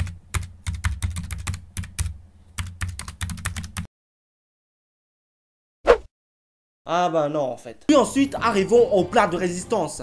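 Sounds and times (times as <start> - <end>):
typing on keyboard: 0.0 - 3.9.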